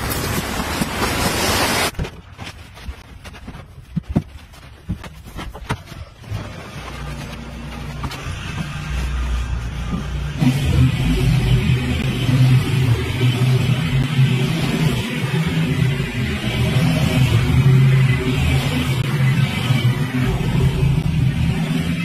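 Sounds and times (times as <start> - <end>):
riding mower engine cutting grass: 6.5 - 22.0.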